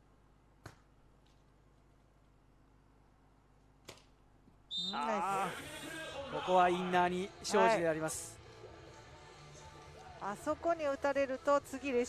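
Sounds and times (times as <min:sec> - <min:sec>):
hand slapping volleyball: 0:00.6 - 0:00.9, 0:03.8 - 0:04.2.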